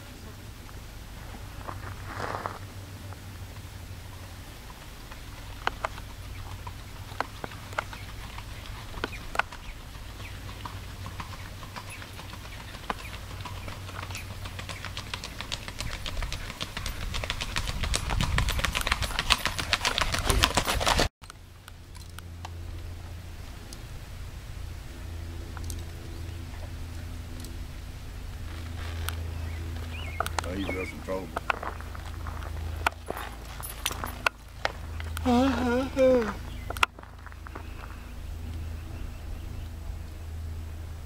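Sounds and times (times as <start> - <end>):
horse hooves on gravel: 0.5 - 23.7, 25.4 - 39.1
hoofbeats on paved road: 0.6 - 21.1, 28.2 - 39.8.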